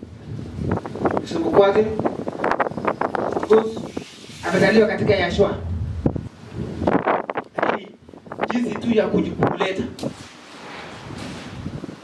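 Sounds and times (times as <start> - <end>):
steady rushing noise: 0.0 - 12.0
person speaking: 3.4 - 5.8.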